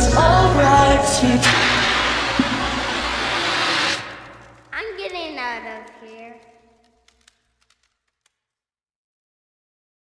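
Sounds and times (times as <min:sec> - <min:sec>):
rushing hiss of noise: 0:01.4 - 0:04.4.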